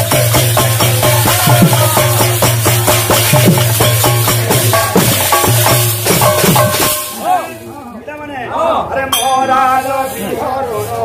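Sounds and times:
drum beat: 0.0s - 7.6s
jingling hand percussion: 0.0s - 7.7s, 9.1s - 11.0s.

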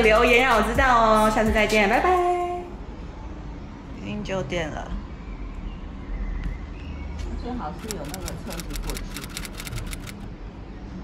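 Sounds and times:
low street rumble: 0.0s - 11.0s
fast run of sharp clicks: 7.8s - 10.3s.

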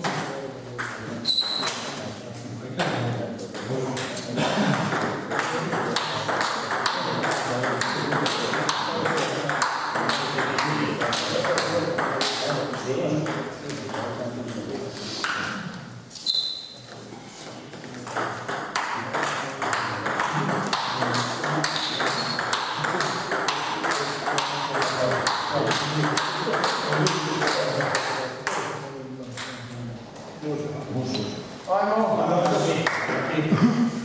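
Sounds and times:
table tennis ball hits: 4.9s - 14.1s, 18.0s - 28.7s.

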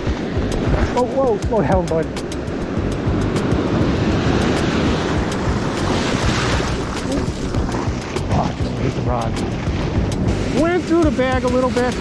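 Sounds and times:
ocean surf breaking: 0.0s - 12.0s
wind rumbling on microphone: 0.0s - 12.0s.

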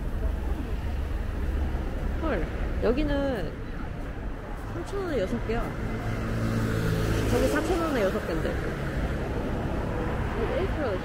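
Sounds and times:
pedestrians talking: 0.0s - 11.0s
vehicles driving past: 0.0s - 11.0s.

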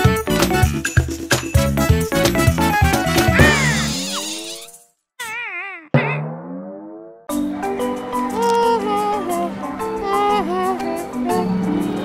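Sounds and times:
warbling cartoon tone: 3.3s - 7.2s.

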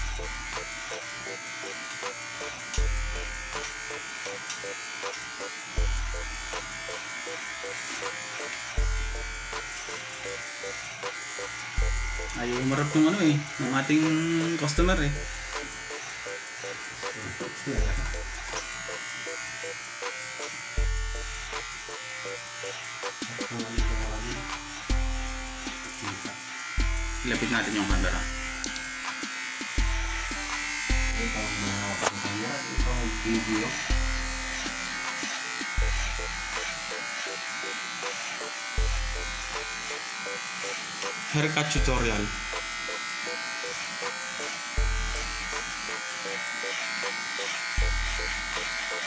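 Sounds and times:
background music with deep bass: 0.0s - 46.3s
electric hair clipper buzzing: 0.0s - 49.0s.

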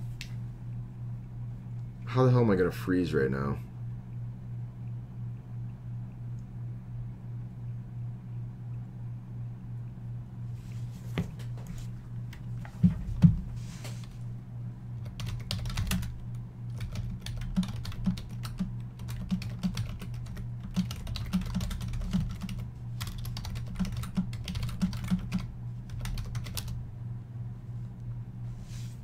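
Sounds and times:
steady low hum: 0.0s - 29.0s
typing on a keyboard: 15.0s - 26.8s.

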